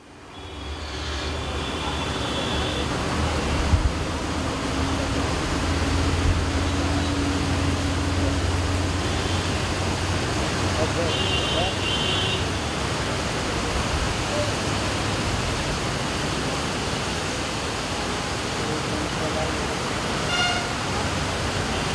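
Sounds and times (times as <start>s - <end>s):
truck and car engines rumbling: 0.0s - 21.9s
tyres on wet asphalt: 0.0s - 21.9s
rain hissing: 0.2s - 21.9s.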